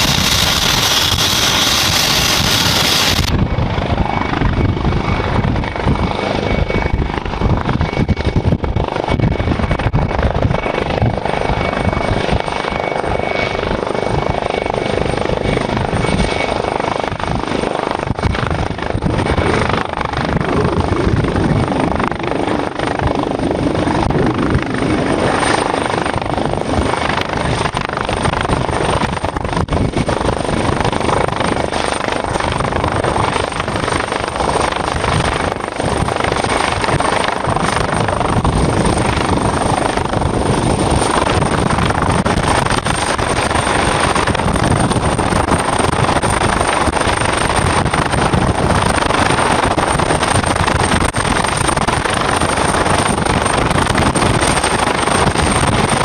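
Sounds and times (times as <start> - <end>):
helicopter hovering: 0.0 - 56.0
high steady whine: 0.0 - 56.0.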